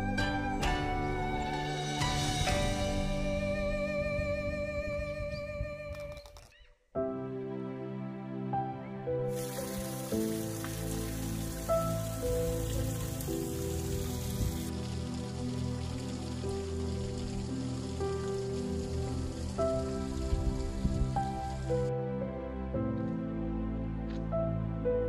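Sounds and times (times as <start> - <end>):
soft keyboard music: 0.0 - 25.0
stream trickling over stones: 9.3 - 21.9.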